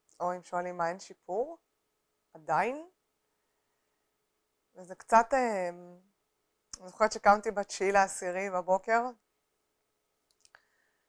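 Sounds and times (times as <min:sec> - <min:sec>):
faint room hum: 0:00.0 - 0:11.0
woman speaking: 0:00.2 - 0:01.6, 0:02.4 - 0:02.9, 0:04.8 - 0:06.0, 0:06.8 - 0:09.2
small clicks: 0:10.2 - 0:10.7.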